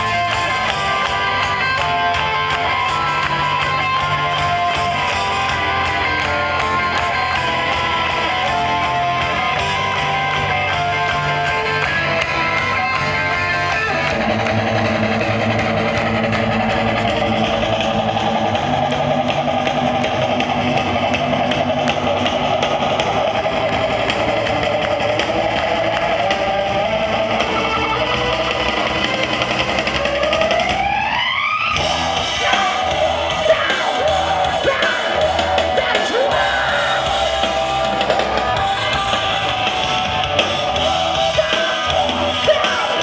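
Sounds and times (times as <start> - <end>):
live metal band playing: 0.0 - 43.0.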